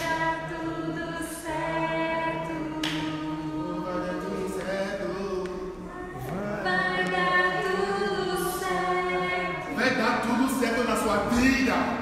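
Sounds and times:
slow worship singing: 0.0s - 12.0s.

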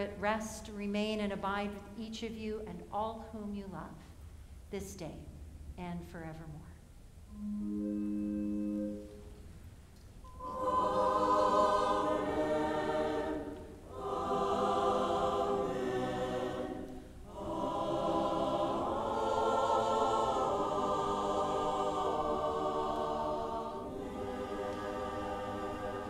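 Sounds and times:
church choir singing: 10.3s - 26.0s.

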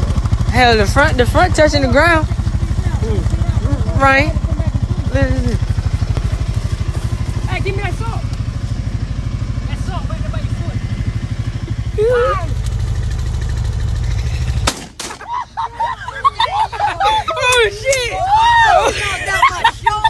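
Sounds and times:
engine idling: 0.0s - 20.0s
people shouting: 11.7s - 12.8s, 15.2s - 20.0s.

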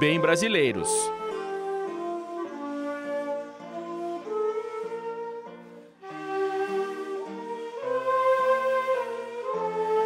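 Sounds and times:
bamboo flutes playing slow melody: 0.0s - 10.0s
classical guitar accompaniment: 0.0s - 10.0s.

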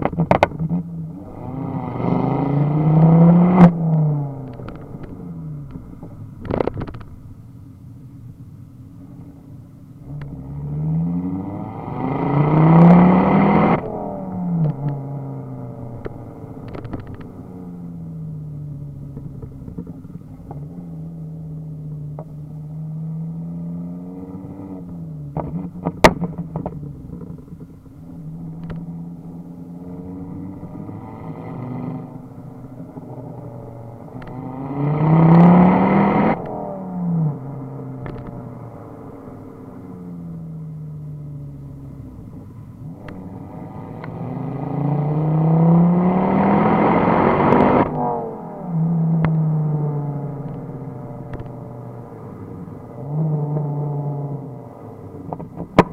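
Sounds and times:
exhaust pops and crackles: 0.0s - 0.9s, 2.9s - 7.5s, 13.8s - 15.1s, 15.8s - 17.4s, 18.8s - 21.0s, 21.8s - 22.4s, 24.9s - 29.4s, 32.0s - 34.4s, 37.9s - 38.6s, 50.3s - 52.3s, 55.1s - 55.9s
car engine revving: 0.0s - 8.3s, 8.9s - 55.9s.

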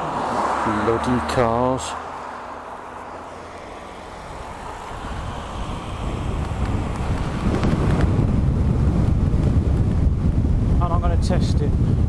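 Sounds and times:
road traffic: 0.0s - 12.0s
wind buffeting microphone: 3.4s - 12.0s.

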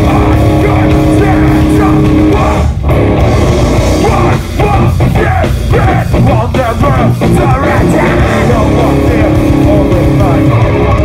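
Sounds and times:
person singing: 0.0s - 2.8s, 4.0s - 11.0s
bass guitar: 0.0s - 11.0s
distorted electric guitars: 0.0s - 11.0s
drums: 0.0s - 11.0s.

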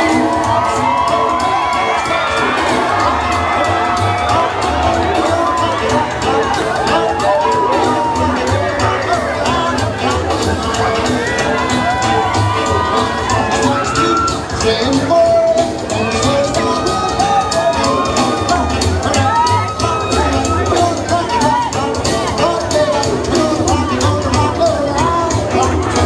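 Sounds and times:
crowd cheering and shouting: 0.0s - 26.0s
dance music: 0.0s - 26.0s.

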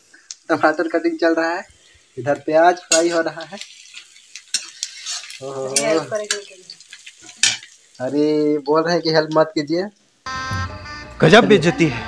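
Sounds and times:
oil sizzling in a wok: 0.0s - 10.3s
person speaking: 5.4s - 6.7s, 11.2s - 12.0s.

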